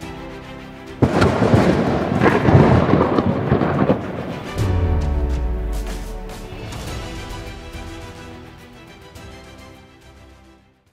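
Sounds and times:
soft music: 0.0 - 10.9
loud thunder burst: 1.0 - 8.1.

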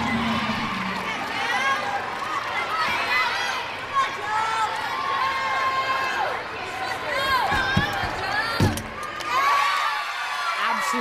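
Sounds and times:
arena crowd voices: 0.0 - 11.0.

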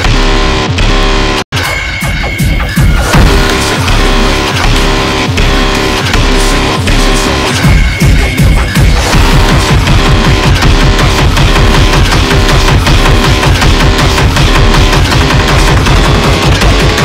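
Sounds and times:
electronic bass line: 0.0 - 17.0
fast drum pattern: 1.6 - 17.0.

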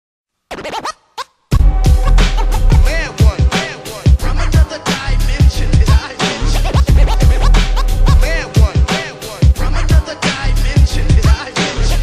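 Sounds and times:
record scratches: 0.5 - 1.3, 2.0 - 2.9, 6.5 - 8.3
hip-hop beat with deep bass: 1.5 - 12.0.

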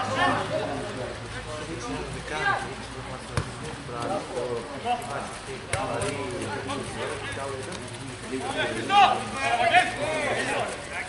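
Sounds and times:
men calling and shouting: 0.0 - 11.0
football being kicked: 3.4 - 3.6.

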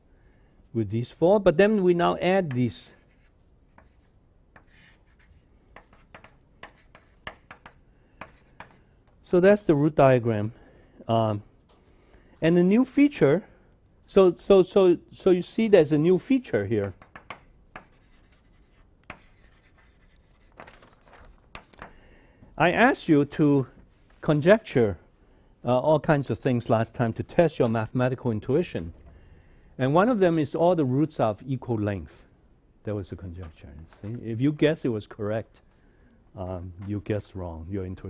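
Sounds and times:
chalk tapping and scratching: 2.4 - 8.9, 16.8 - 21.9.

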